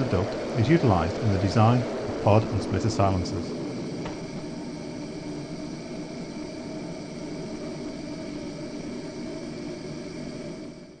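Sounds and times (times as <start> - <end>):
faint steady hums: 0.0 - 11.0.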